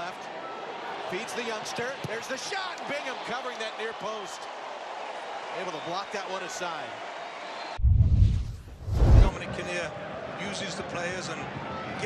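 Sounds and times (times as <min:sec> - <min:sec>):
stadium crowd noise: 0:00.0 - 0:07.8, 0:09.0 - 0:12.0
deep whoosh and boom: 0:07.8 - 0:09.4.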